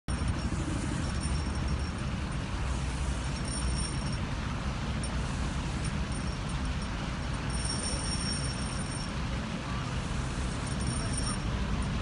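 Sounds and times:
road traffic rumble: 0.1 - 12.0.

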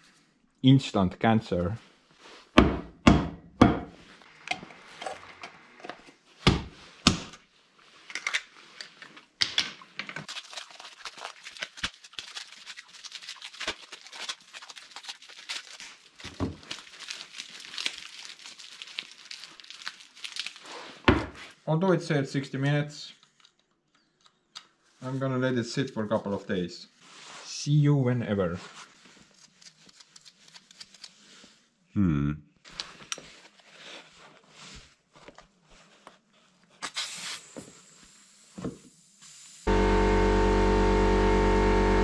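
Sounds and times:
work gloves rustling: 1.6 - 2.6, 3.9 - 21.6, 32.6 - 36.8.

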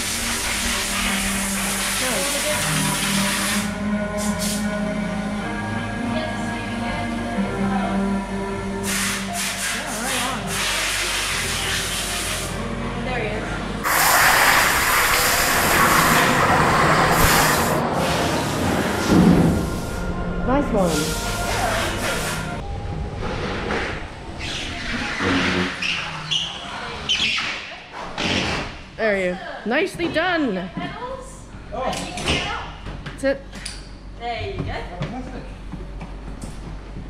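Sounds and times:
music: 0.0 - 16.0, 18.3 - 26.1
go-kart engine accelerating: 15.6 - 19.1.

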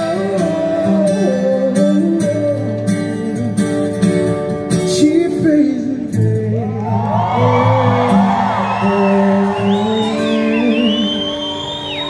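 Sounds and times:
audience cheering and whooping: 6.8 - 12.0.

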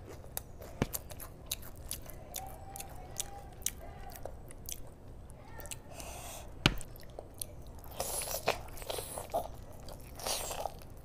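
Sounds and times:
biting and chewing food: 0.0 - 11.0.

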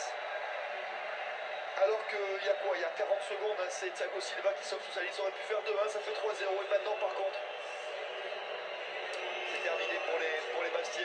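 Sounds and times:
stadium crowd din through tv: 0.0 - 11.0.

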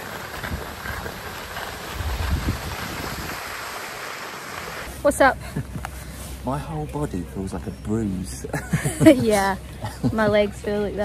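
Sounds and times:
wind on microphone: 0.0 - 4.0
skis sliding over snow: 0.0 - 5.3.

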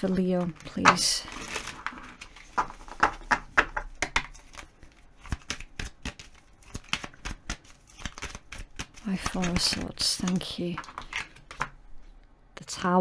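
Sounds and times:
cards being shuffled: 0.2 - 11.8.

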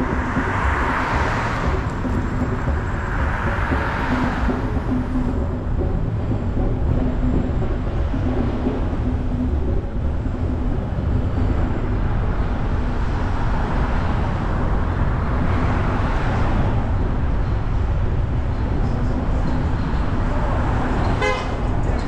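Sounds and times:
road and tyre noise: 0.0 - 22.0
car horn toot: 21.2 - 21.6.

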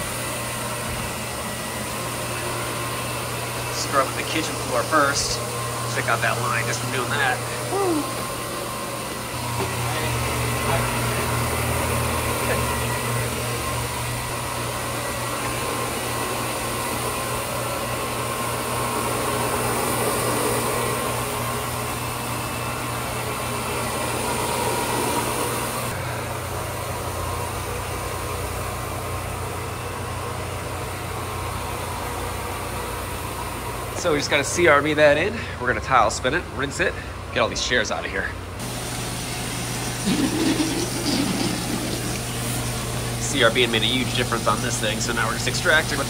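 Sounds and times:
floor machine motor hum: 0.0 - 36.6, 38.0 - 46.0
brushes scrubbing floor: 0.9 - 8.4, 38.6 - 46.0.

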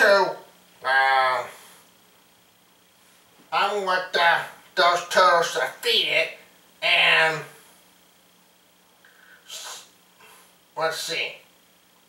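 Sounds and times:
person sniffing sharply: 9.1 - 10.6.

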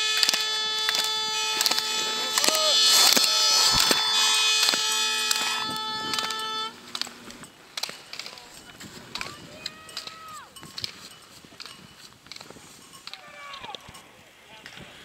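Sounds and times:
loud many-toned horn: 0.0 - 7.4
voices calling out: 0.0 - 14.8
slalom poles clacking: 0.0 - 14.9.

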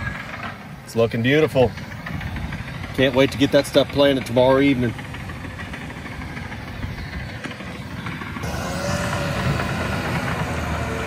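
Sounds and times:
bulldozer diesel engine running: 0.0 - 11.0
machine whine rising and falling: 7.8 - 11.0.

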